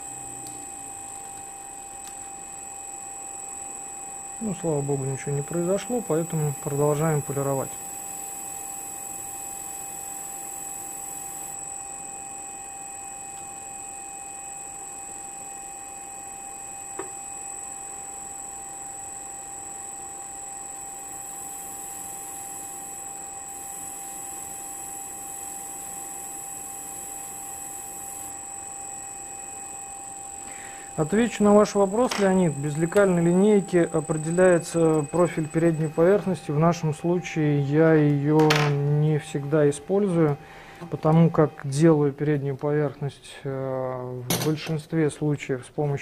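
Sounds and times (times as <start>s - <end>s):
sharpening machine whine: 0.0s - 41.9s.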